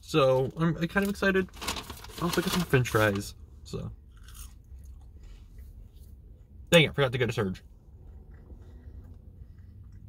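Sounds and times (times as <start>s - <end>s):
chewing a french fry: 4.0s - 6.3s, 7.7s - 10.0s.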